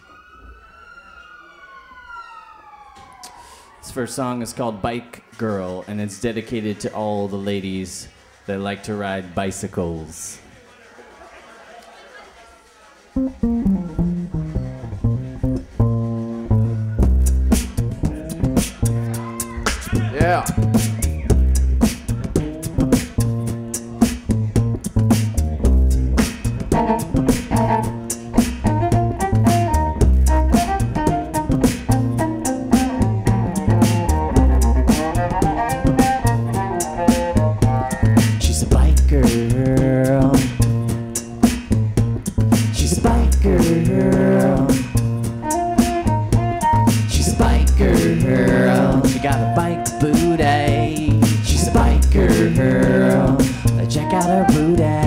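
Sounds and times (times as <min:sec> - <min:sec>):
deep bass line: 0:13.2 - 0:55.0
beatboxed beat: 0:17.0 - 0:55.0
pizzicato cello: 0:26.6 - 0:38.2, 0:43.1 - 0:55.0.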